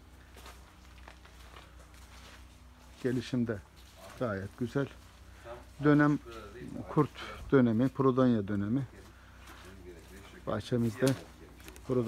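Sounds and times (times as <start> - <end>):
low steady hum: 0.0 - 12.0
rustling plants: 0.0 - 12.0
soft footsteps: 0.0 - 12.0.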